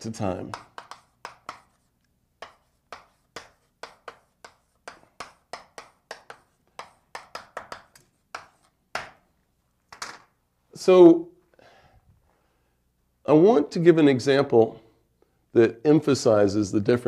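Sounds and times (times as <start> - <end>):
chalk tapping and scraping: 0.0 - 9.3.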